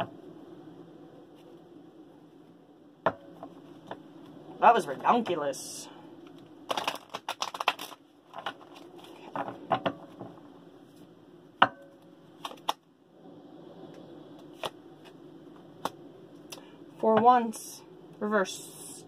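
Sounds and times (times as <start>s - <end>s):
cards shuffling: 6.3s - 9.5s, 12.4s - 12.8s.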